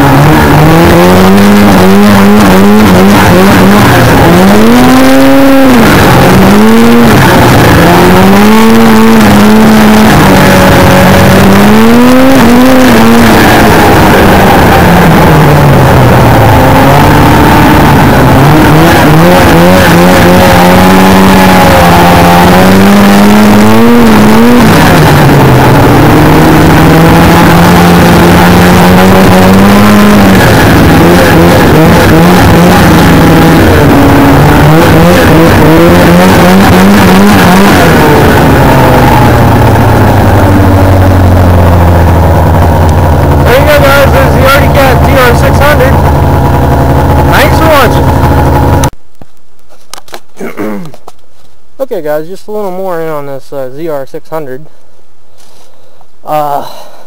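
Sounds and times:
snowmobile engine revving: 0:00.0 - 0:49.0.

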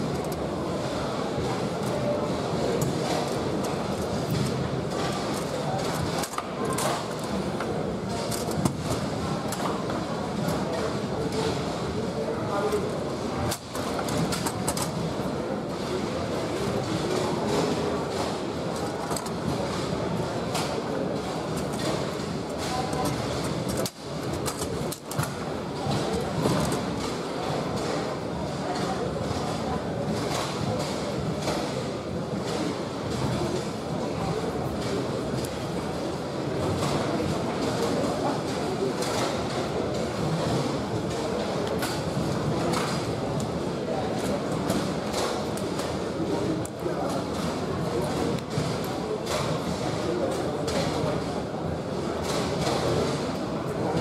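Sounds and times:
murmur of voices in a hall: 0:00.0 - 0:54.0.

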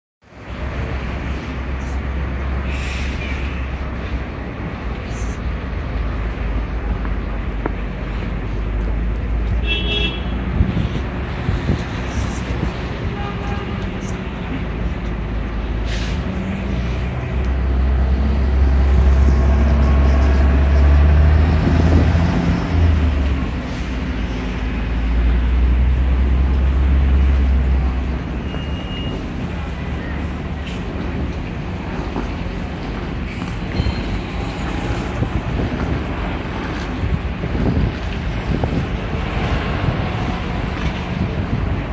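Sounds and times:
heavy vehicle engine rumbling: 0:00.2 - 0:41.9
tyres hissing on wet road: 0:00.6 - 0:07.0, 0:15.6 - 0:28.1.

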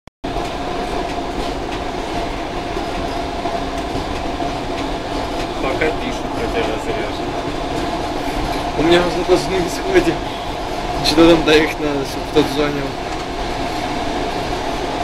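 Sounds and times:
train running on track: 0:00.2 - 0:15.0.

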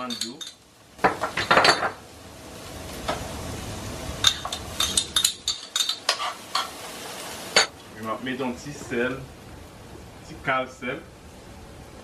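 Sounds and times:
peppers sizzling in frying pan: 0:00.0 - 0:12.0
spoon scraping pan: 0:04.3 - 0:06.8.

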